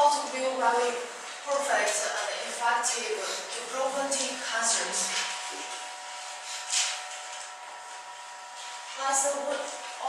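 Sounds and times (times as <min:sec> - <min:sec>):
woman speaking: 0:00.0 - 0:05.4, 0:08.9 - 0:10.0
steady hum: 0:00.0 - 0:10.0.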